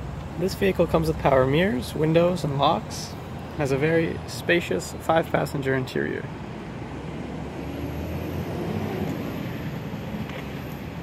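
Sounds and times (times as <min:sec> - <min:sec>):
motor vehicle passing: 0:06.6 - 0:11.0.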